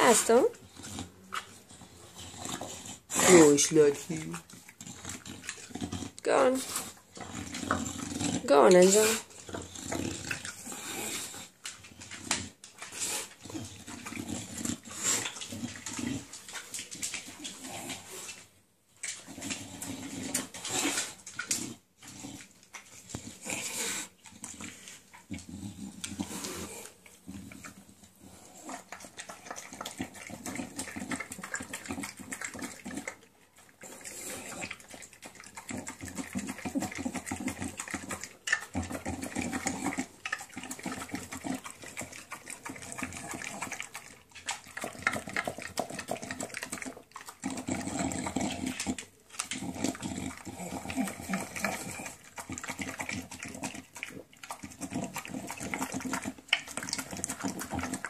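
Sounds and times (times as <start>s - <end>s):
dog chewing wetly: 0.0s - 58.0s.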